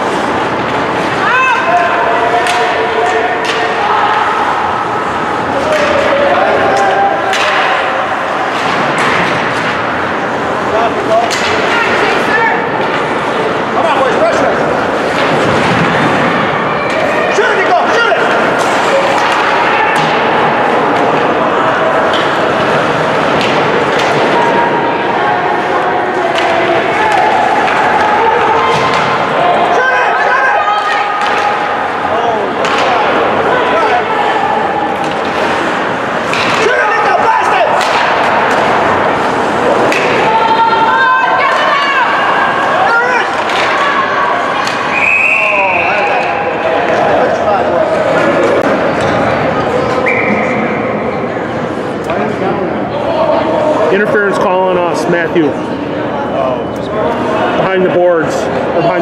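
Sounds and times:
people talking and calling out: 0.0 - 59.0
referee's whistle: 44.9 - 46.3, 50.0 - 50.7.

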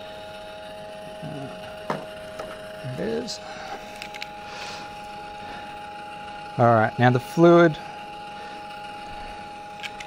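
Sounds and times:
turntable motor humming: 0.0 - 10.0.

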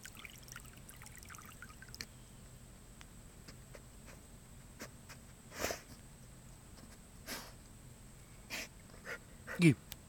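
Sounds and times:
pond water sloshing and trickling: 0.0 - 2.1.

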